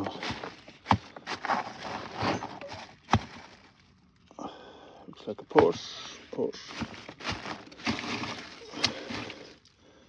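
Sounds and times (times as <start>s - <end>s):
plastic bag rustling: 0.0s - 4.0s, 5.7s - 9.7s.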